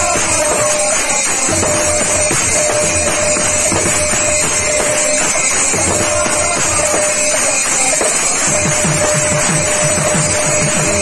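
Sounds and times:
hand drum rapid strokes: 0:00.0 - 0:11.0
small hand cymbals ringing: 0:00.0 - 0:11.0
steady held tone: 0:00.0 - 0:11.0.

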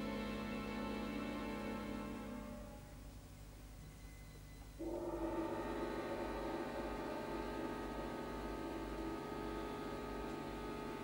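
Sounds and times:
orchestra playing a sustained chord: 0:00.0 - 0:03.0, 0:04.8 - 0:11.0.

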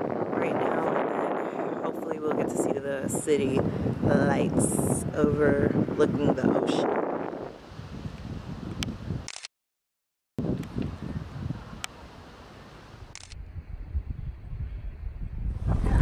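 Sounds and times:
wind buffeting microphone: 0:00.0 - 0:09.3, 0:10.4 - 0:11.9, 0:13.0 - 0:16.0.

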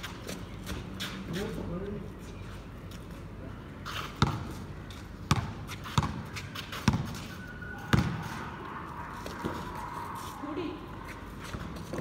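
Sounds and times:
basketball bouncing on concrete: 0:04.1 - 0:04.6, 0:05.2 - 0:07.2, 0:07.8 - 0:08.4.

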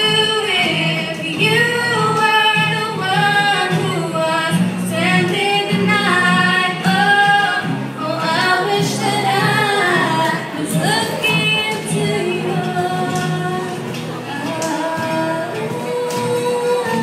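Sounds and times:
acoustic guitars: 0:00.0 - 0:17.0
girls singing: 0:00.0 - 0:17.0.

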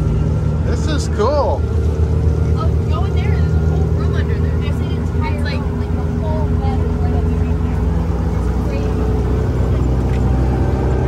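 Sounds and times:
motorboat engine droning: 0:00.0 - 0:11.0.

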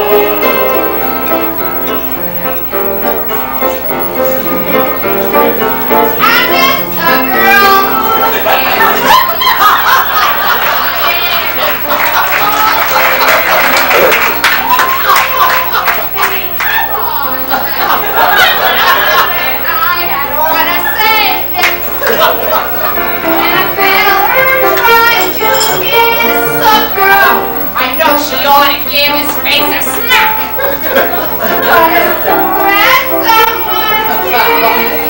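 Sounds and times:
musical accompaniment: 0:00.0 - 0:09.1, 0:20.7 - 0:28.4, 0:29.0 - 0:35.0
person singing high notes: 0:04.7 - 0:08.5
people laughing loudly: 0:06.6 - 0:25.9, 0:29.8 - 0:32.5, 0:33.5 - 0:35.0.

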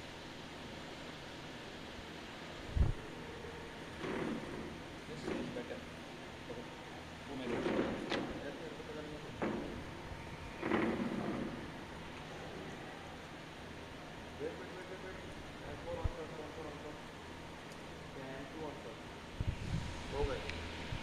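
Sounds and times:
faint open-air ambience: 0:00.0 - 0:21.0.

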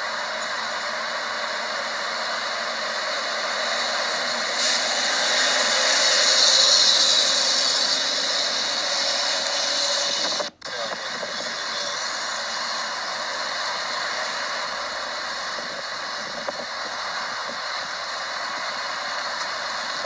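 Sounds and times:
steady rushing outdoor noise: 0:00.0 - 0:20.0.

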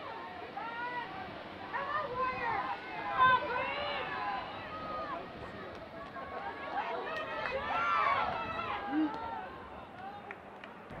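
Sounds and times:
voices shouting on sports field: 0:00.0 - 0:10.4.

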